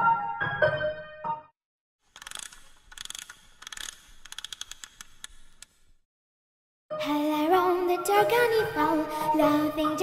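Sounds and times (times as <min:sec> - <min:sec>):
piano tune: 0:00.0 - 0:01.6
ratcheting wind-up mechanism clicking: 0:02.1 - 0:05.9.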